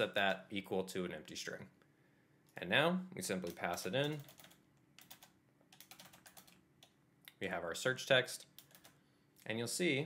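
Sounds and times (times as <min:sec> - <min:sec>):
typing on computer keyboard: 0:03.4 - 0:06.6, 0:08.6 - 0:09.0.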